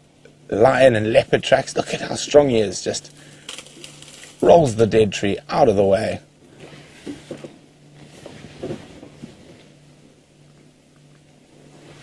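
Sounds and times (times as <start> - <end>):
steady low hum: 0.0 - 12.0
dry wood cracking and creaking: 3.1 - 4.6.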